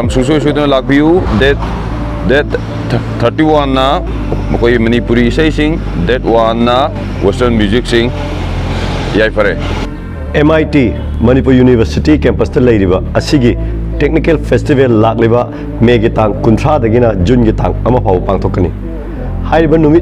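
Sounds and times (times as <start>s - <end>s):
man talking: 0.0s - 8.2s, 9.1s - 9.7s, 10.3s - 20.0s
road traffic rumble: 0.0s - 20.0s.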